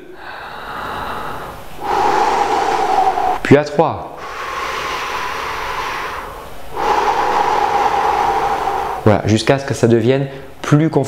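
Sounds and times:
man breathing slowly: 0.0 - 9.4.

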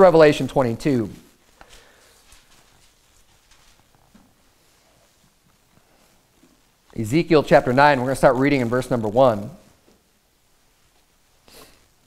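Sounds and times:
pages turning: 1.5 - 4.3.

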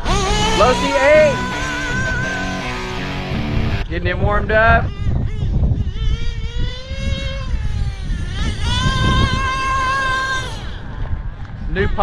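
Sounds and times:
model buggy engine revving whine: 0.0 - 3.8, 4.9 - 10.8
low rumble: 0.0 - 6.6.

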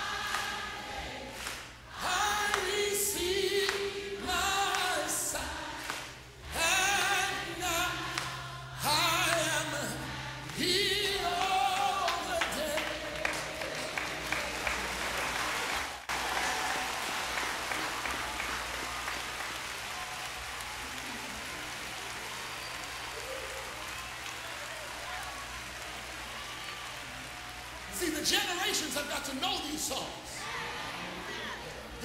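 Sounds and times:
crowd applauding: 0.0 - 30.2.

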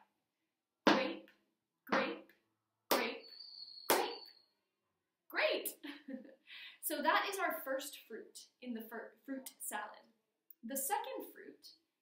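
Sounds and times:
hand claps: 2.9 - 3.2, 3.9 - 4.3.

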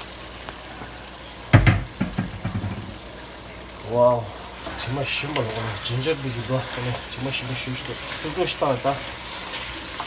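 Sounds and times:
meat sizzling in a wok: 0.0 - 10.0
wooden spatula scraping a wok: 4.6 - 10.0.

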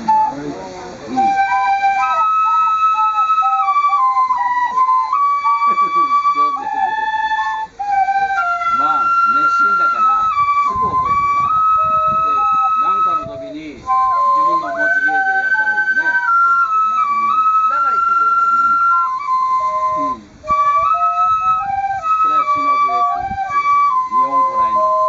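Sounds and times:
bamboo flutes playing melody: 0.0 - 25.0.

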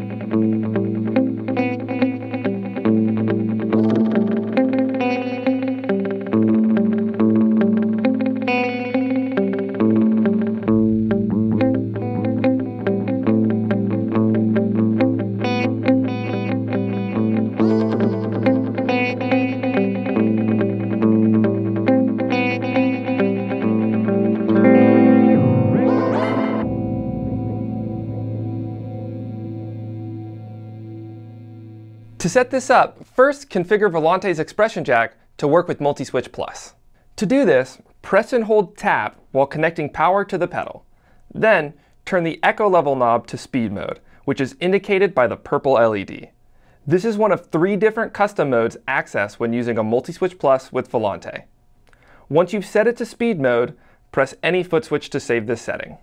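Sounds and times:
electric guitar with echo: 0.0 - 32.2
rising and falling pitch sweep: 3.8 - 4.8, 24.6 - 29.7
low drone: 25.3 - 29.9.

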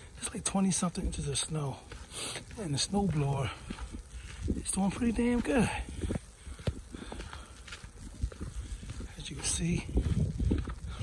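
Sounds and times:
footsteps in deep snow: 0.0 - 11.0.

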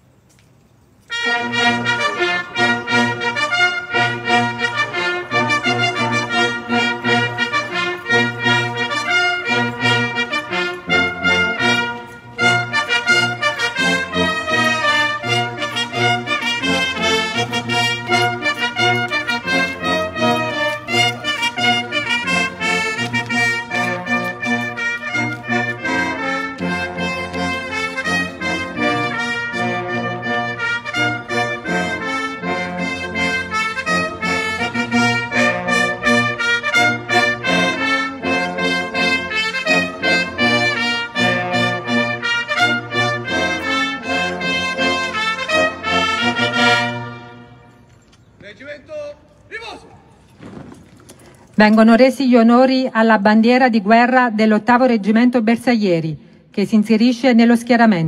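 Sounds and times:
brass band playing a march: 1.0 - 52.4.

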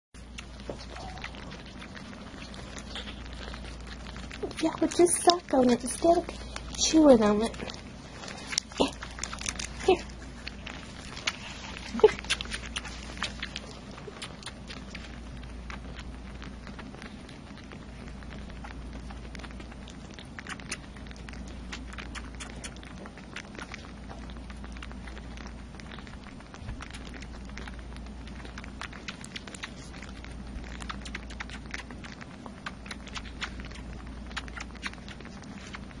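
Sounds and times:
kittens suckling on bottle: 0.2 - 36.0
steady low hum: 0.2 - 36.0.

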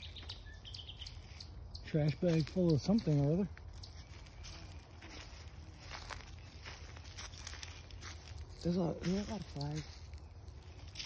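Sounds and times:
footsteps crunching dry leaves: 0.0 - 11.0.

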